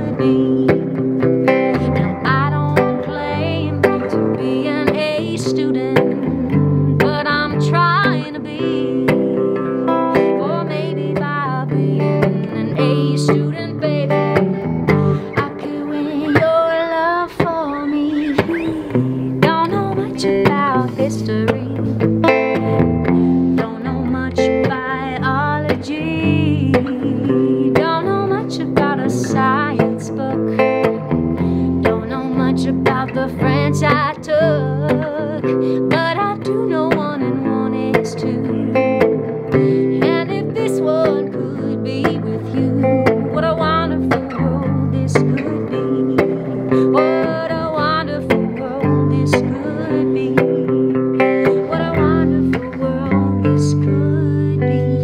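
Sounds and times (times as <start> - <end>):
electric guitar through amp: 0.0 - 55.0
woman singing: 0.0 - 55.0.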